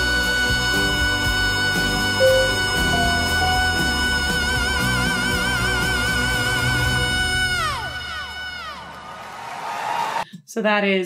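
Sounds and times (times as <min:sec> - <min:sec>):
male singer belting high note: 0:02.0 - 0:05.5
concert crowd cheering: 0:07.8 - 0:10.2.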